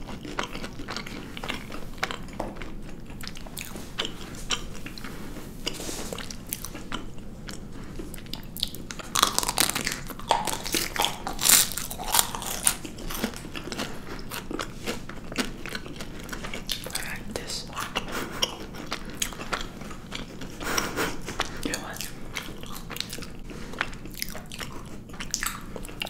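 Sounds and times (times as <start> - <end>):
chewing clicks: 8.2 - 17.1, 17.7 - 26.0
chocolate shell crackling: 9.0 - 13.4.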